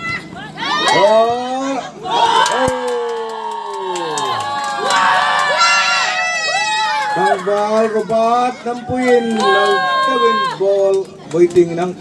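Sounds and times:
crowd shouting and cheering: 0.0s - 11.5s.

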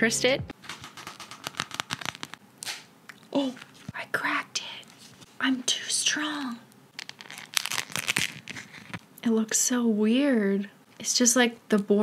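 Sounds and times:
nail polish film peeling crackles: 0.8s - 4.0s, 6.9s - 9.1s.

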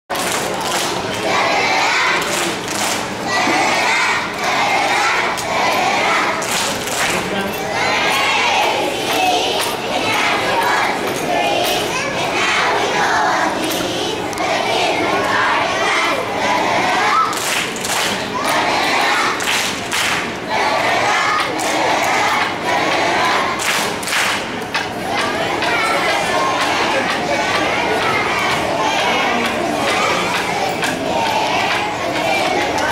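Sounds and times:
children shouting together: 3.2s - 6.6s, 7.7s - 17.5s, 18.1s - 19.5s, 25.0s - 32.9s.

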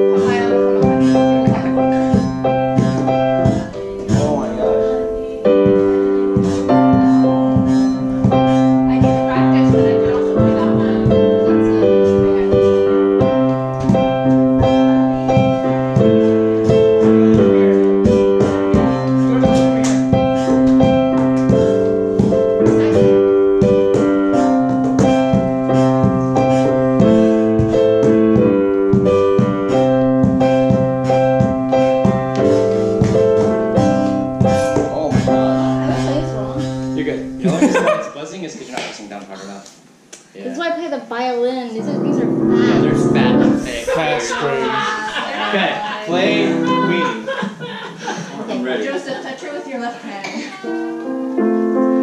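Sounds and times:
digital piano chords: 0.0s - 38.5s, 40.6s - 47.4s, 50.4s - 52.0s.

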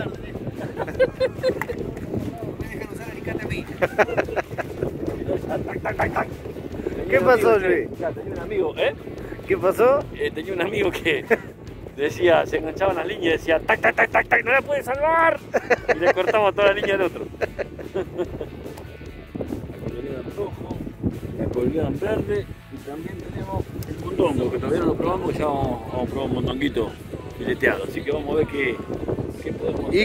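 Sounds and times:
background music: 0.0s - 30.0s
wind buffeting microphone: 0.0s - 30.0s.

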